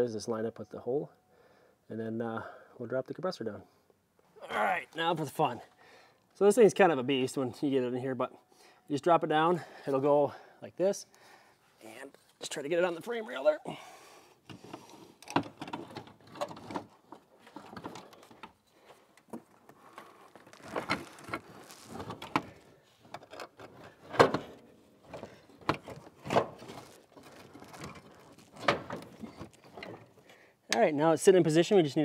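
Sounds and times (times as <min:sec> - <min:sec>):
clunks and scrapes of metal compressor: 0:14.4 - 0:30.4.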